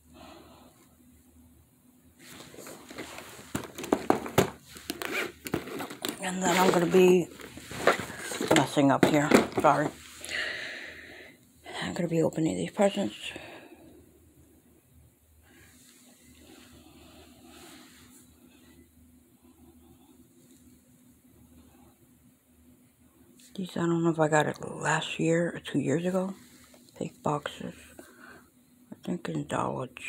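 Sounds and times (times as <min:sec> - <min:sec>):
low steady hum: 0:00.0 - 0:30.0
packaging rustling: 0:02.3 - 0:10.0
packaging knocking on floor: 0:03.0 - 0:06.9.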